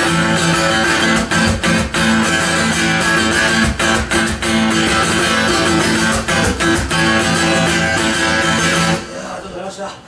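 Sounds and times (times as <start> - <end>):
electric guitar strumming chords: 0.0 - 9.5.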